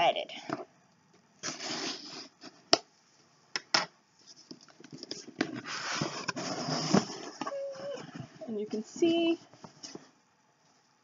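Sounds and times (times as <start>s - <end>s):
cardboard scraping and rustling: 4.2s - 8.4s.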